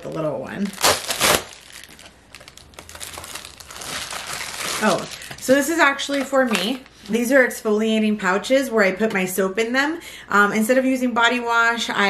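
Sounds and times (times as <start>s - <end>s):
plastic packaging crinkling: 0.0s - 7.3s
padded mailer tearing: 0.7s - 5.4s.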